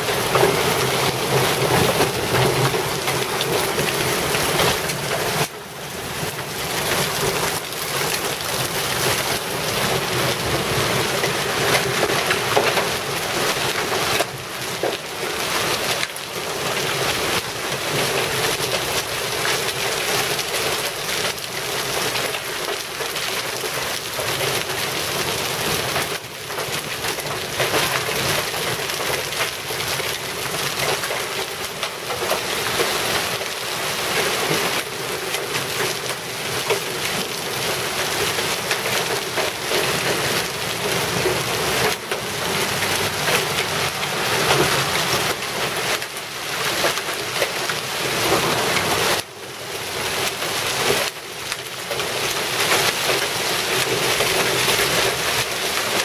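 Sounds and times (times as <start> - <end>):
hail and rain on concrete: 0.0 - 56.0.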